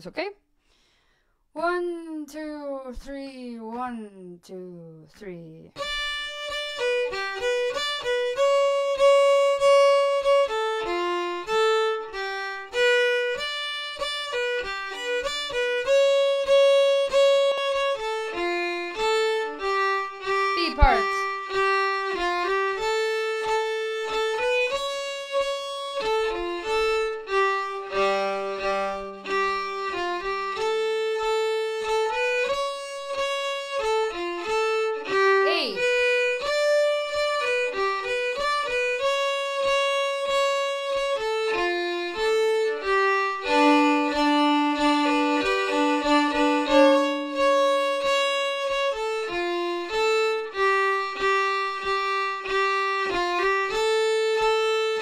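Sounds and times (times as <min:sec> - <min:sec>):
solo violin folk melody: 0:05.7 - 0:55.0.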